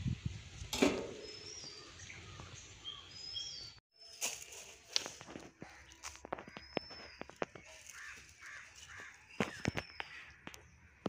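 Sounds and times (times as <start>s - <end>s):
birds calling: 0.8s - 11.0s
harsh bird calls: 1.1s - 4.2s, 5.5s - 11.0s.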